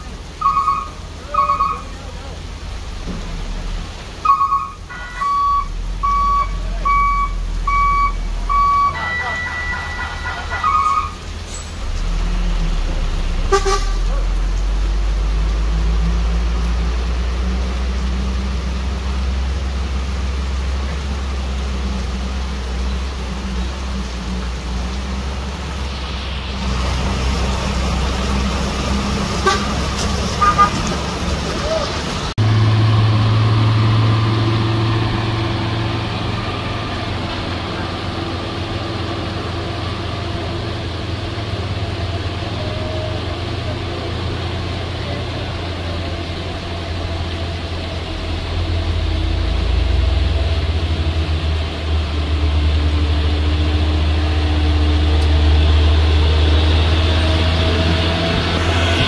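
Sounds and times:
traffic on wet road: 0.0s - 59.0s
truck diesel engine drone: 0.0s - 59.0s
car horn toots: 0.4s - 1.9s, 4.2s - 11.2s, 13.5s - 14.1s, 29.4s - 29.8s, 30.4s - 30.8s.

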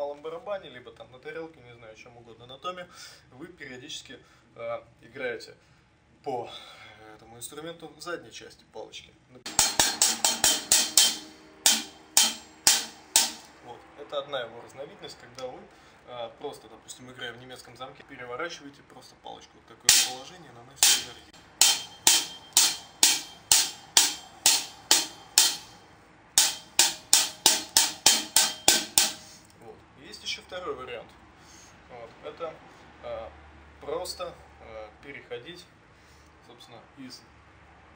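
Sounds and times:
drumstick strokes: 9.5s - 13.6s, 19.9s - 25.8s, 26.4s - 29.5s.

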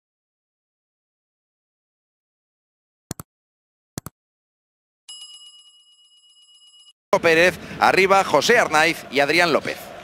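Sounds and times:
notification bell trill: 5.1s - 6.9s.

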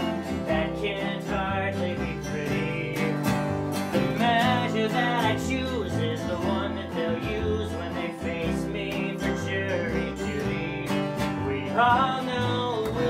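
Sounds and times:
acoustic guitar strumming: 0.0s - 13.0s
plucked upright bass: 0.0s - 13.0s.

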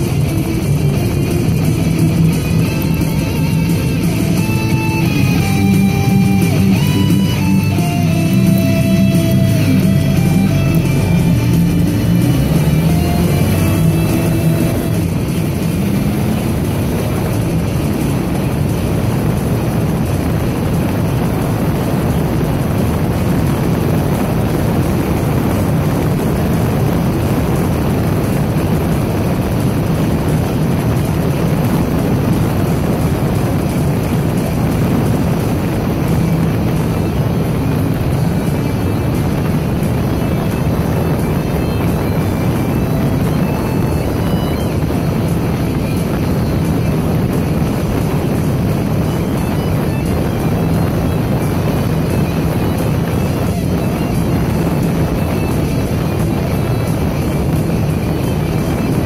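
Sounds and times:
vehicle rumbling on road: 0.0s - 59.0s.

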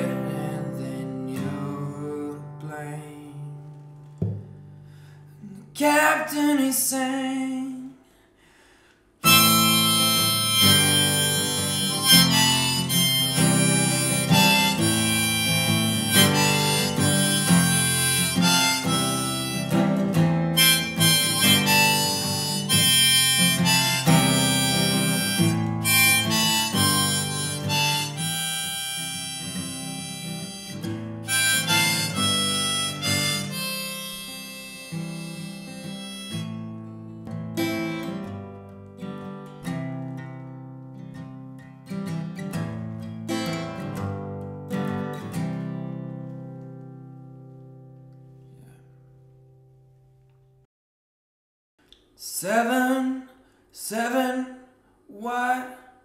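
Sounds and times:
strummed acoustic guitar: 0.0s - 7.5s, 9.2s - 49.9s
harmonica solo: 9.2s - 38.4s.

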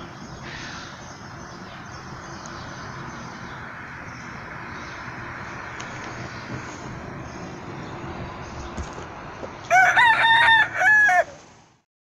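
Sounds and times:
outdoor background hiss: 0.0s - 11.8s
rooster crowing: 9.7s - 11.4s.

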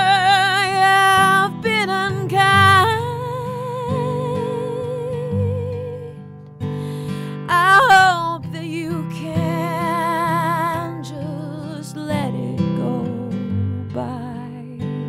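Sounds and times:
acoustic guitar chords: 0.0s - 15.0s.

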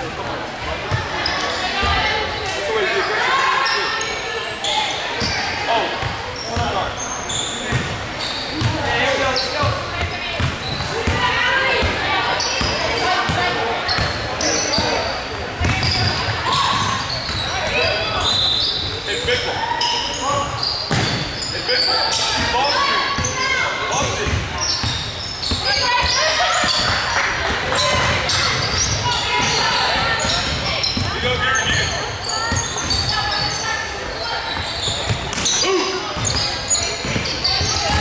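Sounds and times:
sneaker squeaks: 0.9s - 38.0s.

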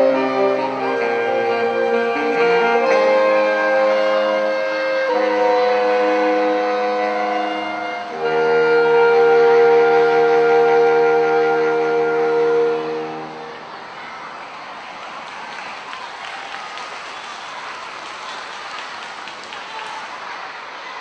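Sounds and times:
saxophone quartet playing chords: 0.0s - 13.8s.

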